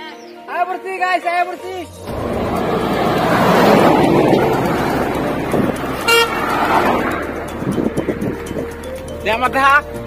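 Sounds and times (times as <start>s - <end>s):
road and wind noise: 2.0s - 10.0s
vehicle horn toot: 6.0s - 6.5s.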